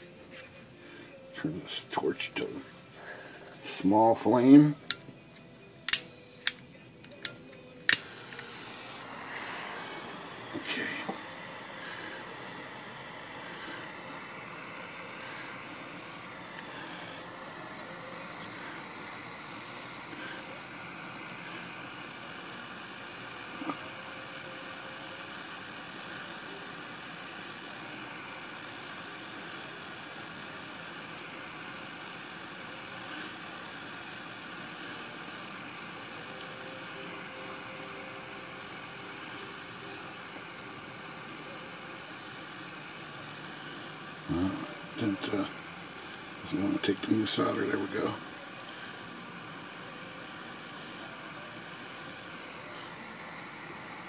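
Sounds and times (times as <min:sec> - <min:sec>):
gas torch hissing: 0:00.0 - 0:05.0, 0:05.8 - 0:54.0.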